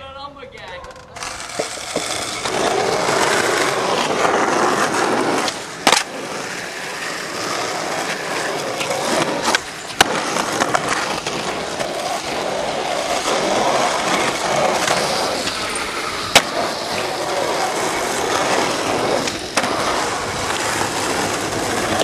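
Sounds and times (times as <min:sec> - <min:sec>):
skateboard clacking on ground: 0:00.6 - 0:22.0
skateboard wheels rolling on asphalt: 0:00.6 - 0:22.0.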